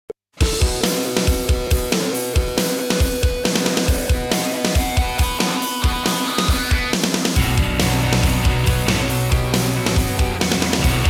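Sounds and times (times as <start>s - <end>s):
distorted guitar chords: 0.4s - 11.0s.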